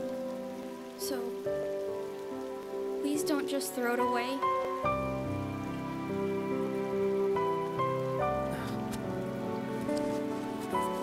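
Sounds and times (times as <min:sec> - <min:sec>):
soft background music: 0:00.0 - 0:11.0
steady rain falling: 0:00.0 - 0:11.0.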